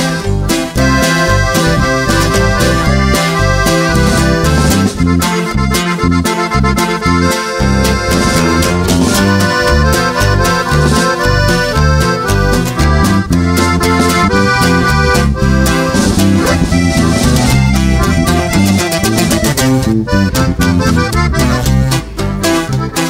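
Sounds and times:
accordion melody: 0.0 - 23.0
stepping bass line: 0.0 - 23.0.

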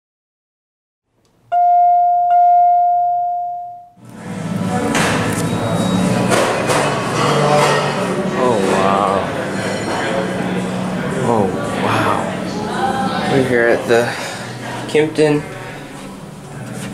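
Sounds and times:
people talking in echoing lobby: 4.0 - 16.9.

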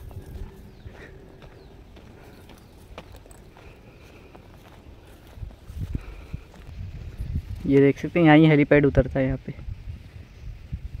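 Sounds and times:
wind rumble on microphone: 0.0 - 1.8, 5.0 - 11.0
footsteps crunching on dirt: 0.0 - 8.4.

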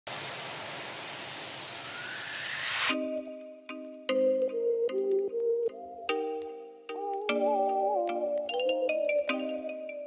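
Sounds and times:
steady noise hiss: 0.1 - 3.0
rising tone riser: 0.1 - 3.4.

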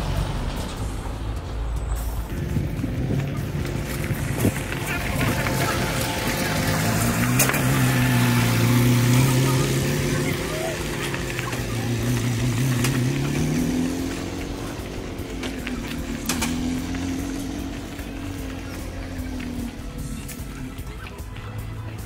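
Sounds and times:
buggy engine pulling away: 0.0 - 22.0.

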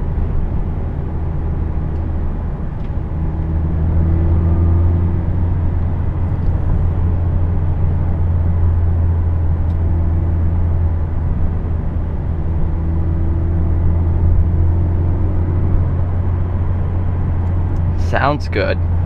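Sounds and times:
car engine drone: 0.0 - 19.0
road noise: 0.0 - 19.0.

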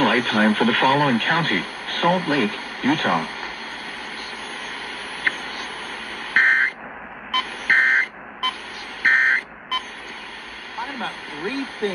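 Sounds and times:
radio hiss: 0.0 - 11.9
warbling data bursts: 3.6 - 10.0.

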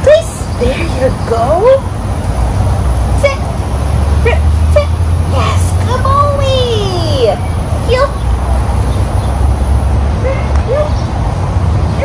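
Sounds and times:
passing road vehicle rumble: 0.0 - 12.0.

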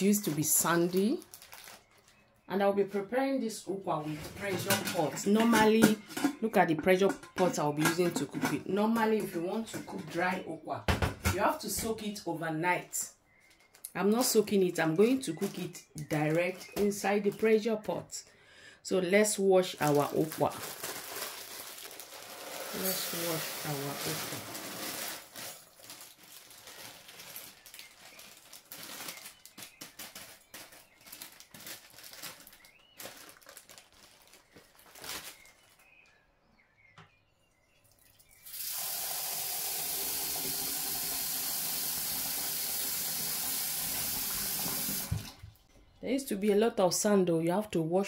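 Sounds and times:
plastic bag crinkling: 0.0 - 2.4, 13.4 - 17.7, 19.6 - 35.9
seeds poured into glass bowl: 22.2 - 25.6
tap water running into sink: 22.4 - 24.8, 38.4 - 45.4.

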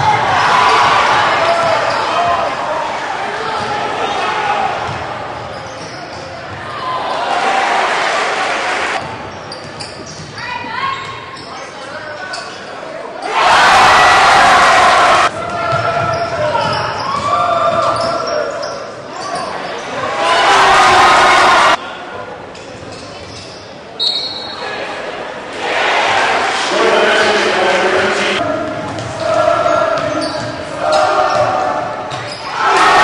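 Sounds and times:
crowd cheering: 0.0 - 5.1, 6.7 - 9.0, 13.2 - 15.5, 20.0 - 21.8, 32.5 - 33.0.

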